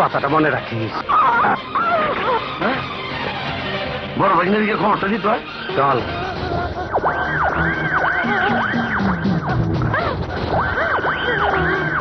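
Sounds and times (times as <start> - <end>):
film background music: 0.0 - 12.0
man snickering and laughing: 6.0 - 7.0.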